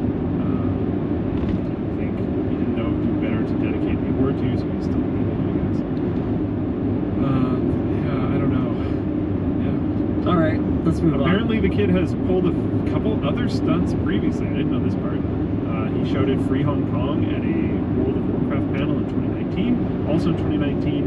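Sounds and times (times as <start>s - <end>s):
car road and engine rumble: 0.0s - 21.0s
faint talking: 0.4s - 0.8s, 2.0s - 5.8s, 7.2s - 9.0s, 9.6s - 21.0s.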